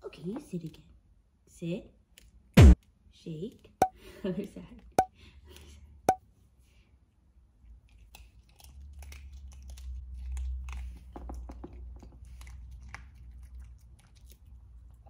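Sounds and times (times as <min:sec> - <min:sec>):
dog chewing crunchy treat: 0:07.8 - 0:15.0.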